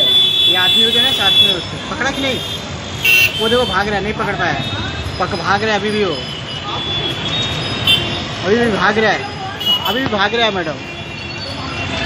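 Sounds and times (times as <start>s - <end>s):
autorickshaws rumbling: 0.0s - 12.0s
motorbikes passing: 0.0s - 12.0s
bus passing: 1.6s - 12.0s.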